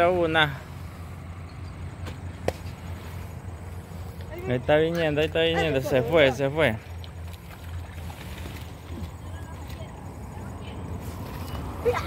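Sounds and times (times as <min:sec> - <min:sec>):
low outdoor hum: 0:00.0 - 0:12.0.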